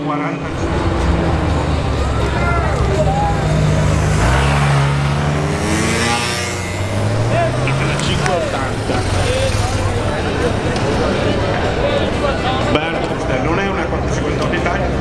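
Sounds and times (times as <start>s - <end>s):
crowd voices: 0.0s - 15.0s
sports car engine accelerating: 0.4s - 15.0s.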